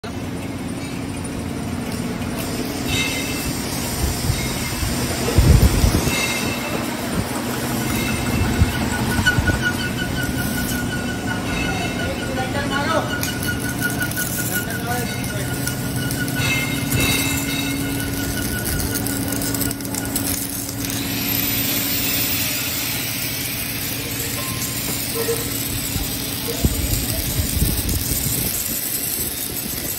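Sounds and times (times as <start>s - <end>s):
indistinct voices: 2.9s - 29.9s
hiss: 20.8s - 29.9s.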